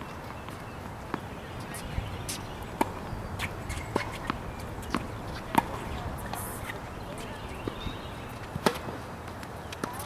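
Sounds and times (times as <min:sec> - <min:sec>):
racket hitting tennis ball: 0:00.5 - 0:10.0.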